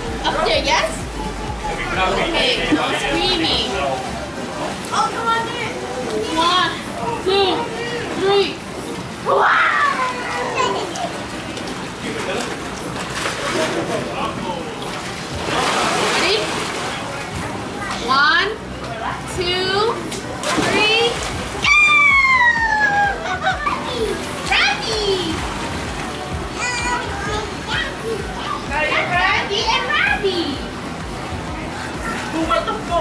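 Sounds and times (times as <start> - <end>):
children playing and shrieking: 9.2 - 11.3, 21.5 - 24.9
children chattering: 9.9 - 11.5.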